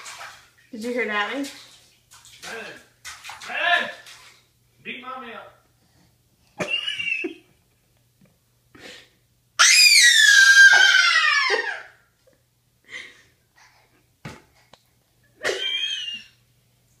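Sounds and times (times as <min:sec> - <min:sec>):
toddler squealing with delight: 0:09.6 - 0:12.0.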